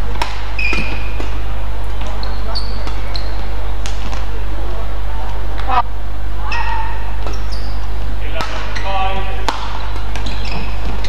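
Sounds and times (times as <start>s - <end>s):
shoes squeaking on court floor: 0.0s - 4.3s, 6.5s - 11.0s
steady low hum: 0.0s - 11.0s.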